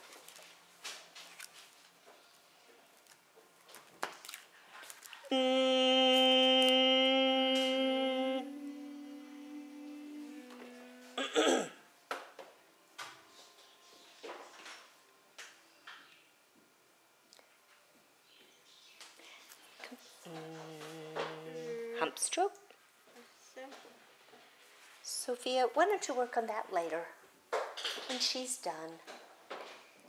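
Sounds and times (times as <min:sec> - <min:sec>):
person humming: 0:05.2 - 0:11.8, 0:20.2 - 0:22.2
wavering vocal squeak: 0:05.3 - 0:11.4.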